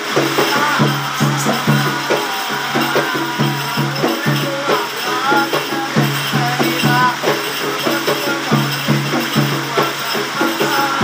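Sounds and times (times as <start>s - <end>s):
hand drum beaten fast: 0.0s - 11.0s
light jingling: 0.0s - 11.0s.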